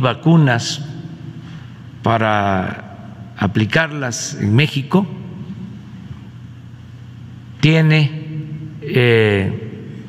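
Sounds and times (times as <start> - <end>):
man speaking: 0.0 - 1.2, 2.0 - 5.5, 7.6 - 10.0
low microphone hum with hiss: 0.0 - 10.0.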